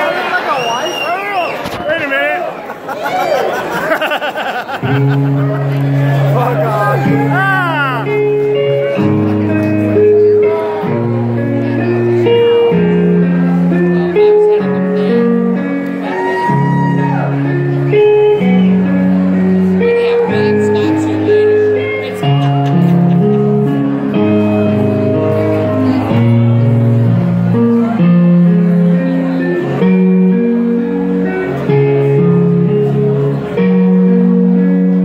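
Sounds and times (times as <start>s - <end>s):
electric guitar: 4.7s - 35.0s.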